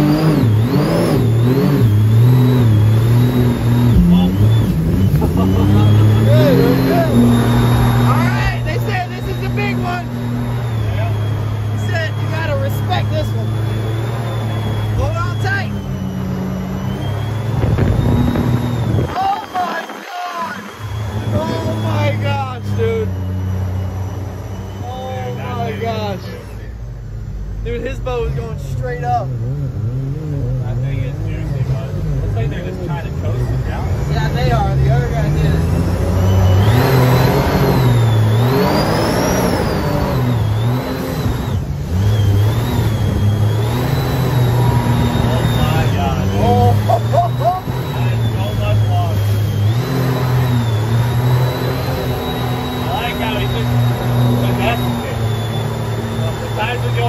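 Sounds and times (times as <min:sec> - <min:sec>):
jet boat engine running hard: 0:03.6 - 0:26.6, 0:51.8 - 0:57.0.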